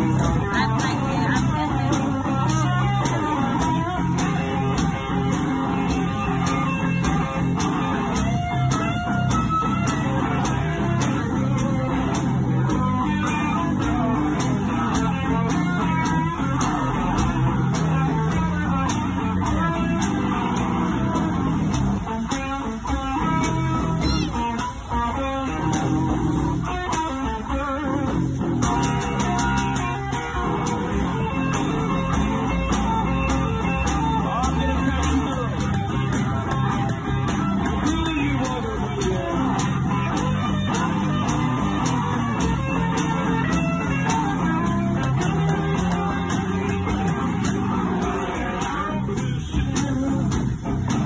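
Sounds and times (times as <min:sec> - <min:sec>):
electric guitar riffing: 0:00.0 - 0:51.0
kick drum beat: 0:00.0 - 0:51.0.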